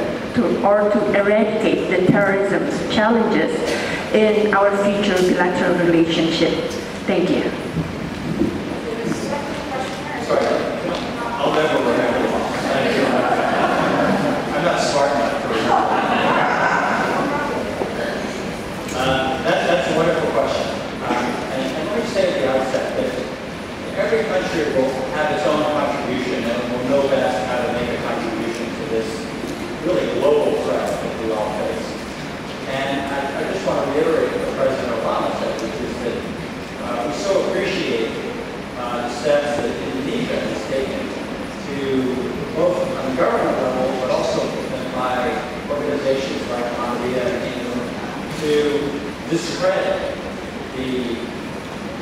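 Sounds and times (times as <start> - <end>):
man speaking into a microphone: 10.2 - 17.1, 17.9 - 51.6.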